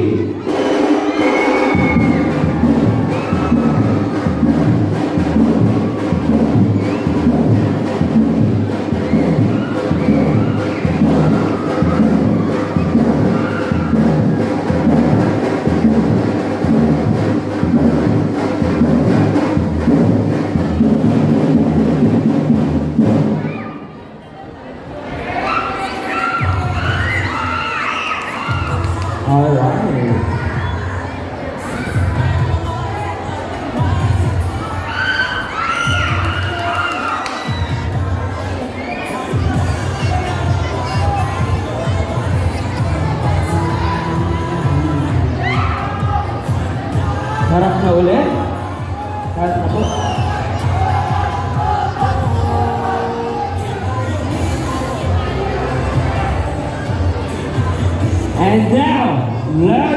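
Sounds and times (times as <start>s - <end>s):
crowd shouting and cheering: 0.0s - 59.9s
music with heavy bass beat: 1.7s - 23.4s, 39.4s - 58.4s.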